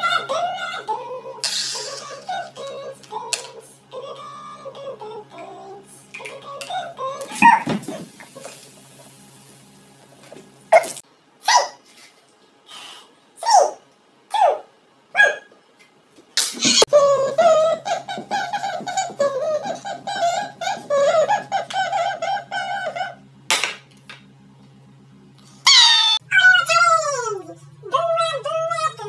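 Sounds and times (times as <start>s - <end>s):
cola fizzing and hissing: 7.8s - 10.3s.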